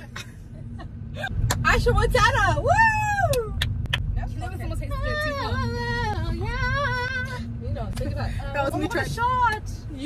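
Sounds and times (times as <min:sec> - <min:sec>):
car cabin rumble: 0:00.0 - 0:10.0.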